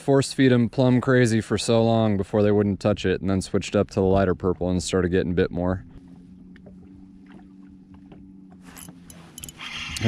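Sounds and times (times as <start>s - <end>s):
electric trolling motor humming: 5.0s - 10.0s
fishing reel cranking: 8.7s - 10.0s.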